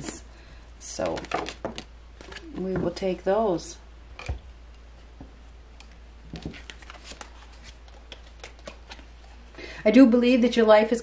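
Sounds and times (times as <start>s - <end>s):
cards being handled: 5.8s - 9.5s.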